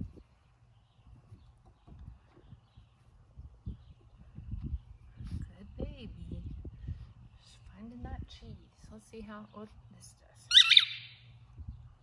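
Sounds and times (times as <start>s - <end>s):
low wind rumble: 0.0s - 10.4s, 11.0s - 12.0s.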